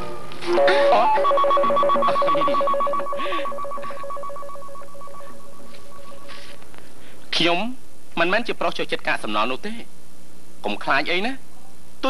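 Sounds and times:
telephone ringing with warbling trill: 0.6s - 6.5s.

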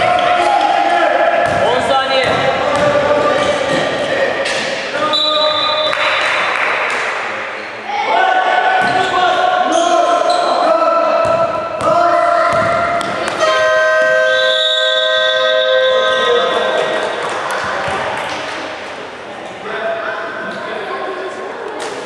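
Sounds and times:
voices calling in echoing hall: 0.0s - 22.0s.

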